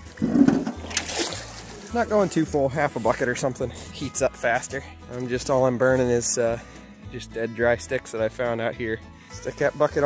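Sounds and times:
water gushing into bucket: 0.0s - 2.1s
bucket splashing into water: 0.0s - 2.3s.

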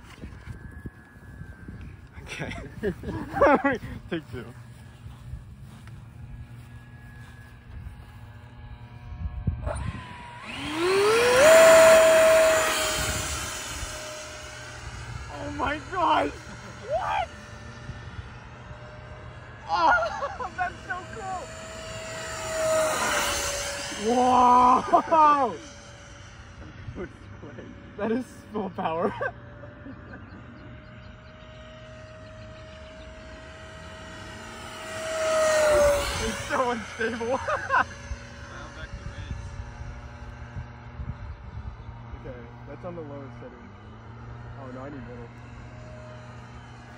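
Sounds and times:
electric ducted fan whine: 0.0s - 46.9s.

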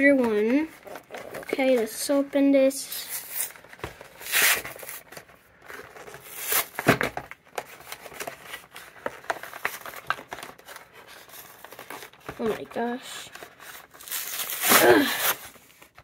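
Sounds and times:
cardboard ripping: 3.0s - 5.2s, 6.0s - 7.2s, 13.6s - 15.8s.

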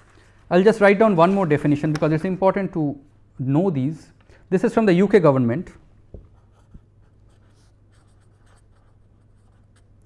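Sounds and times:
pen scratching on paper: 6.4s - 10.0s.

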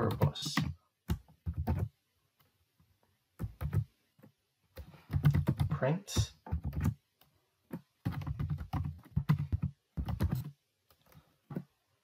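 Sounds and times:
typing on computer keyboard: 0.0s - 1.9s, 3.4s - 11.2s.

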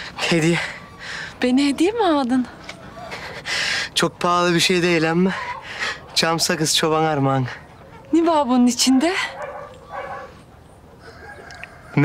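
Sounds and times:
chickens clucking: 9.4s - 12.0s
rooster crowing: 11.0s - 12.0s.

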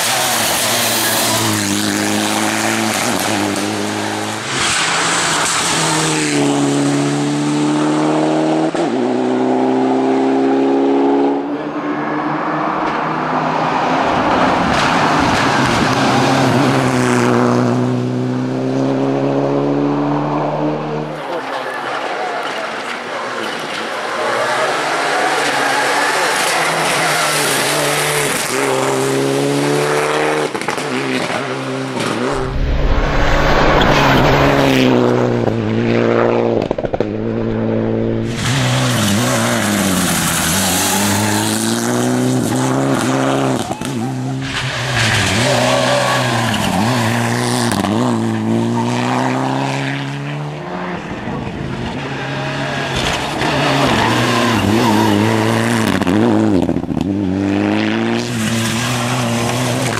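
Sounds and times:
rally car engine revving: 0.0s - 21.2s, 24.3s - 59.9s.

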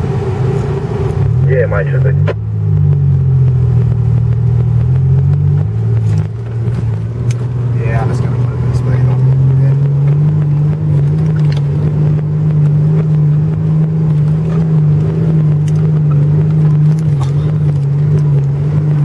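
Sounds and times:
engine drone inside car cabin: 0.0s - 19.0s.

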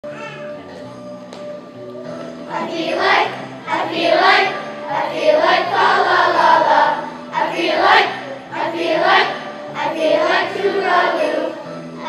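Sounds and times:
children's choir singing: 2.3s - 12.0s.

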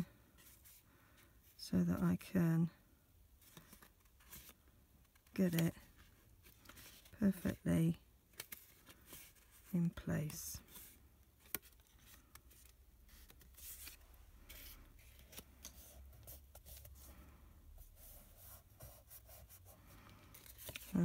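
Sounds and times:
card stock rustling and sliding: 8.4s - 17.1s, 17.9s - 21.0s.

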